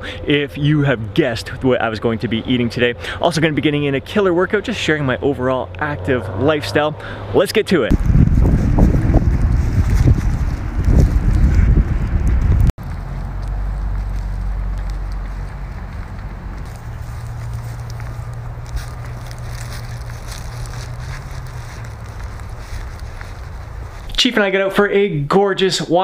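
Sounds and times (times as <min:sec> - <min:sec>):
wind buffeting microphone: 0:07.9 - 0:24.1
steady low rumble: 0:07.9 - 0:24.2.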